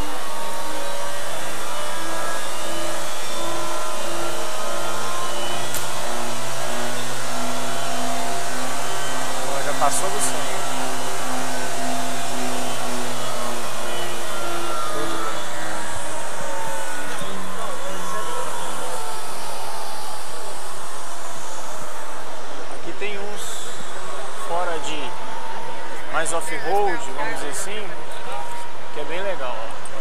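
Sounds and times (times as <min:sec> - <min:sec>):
model car motor whine: 0:00.0 - 0:30.0
steady low hum: 0:00.0 - 0:30.0.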